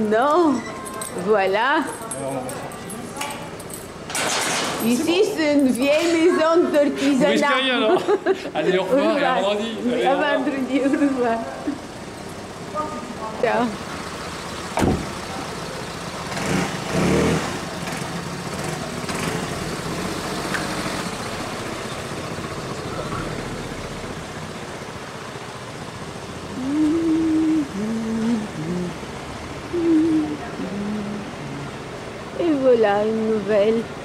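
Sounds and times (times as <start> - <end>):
street traffic: 0.0 - 34.0
van engine running: 1.2 - 34.0
sharp knock: 14.8 - 15.1.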